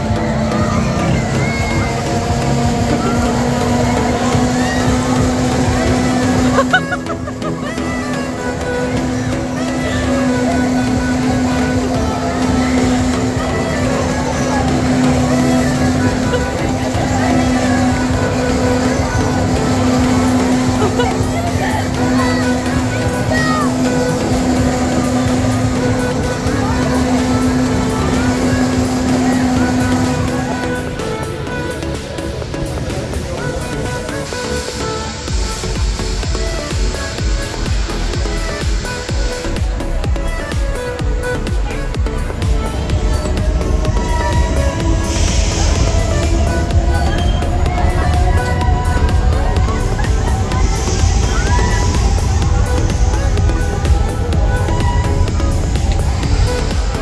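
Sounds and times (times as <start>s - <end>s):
amusement ride mechanical hum: 0.0s - 57.0s
music with a regular beat: 0.0s - 57.0s
riders' voices: 0.0s - 57.0s.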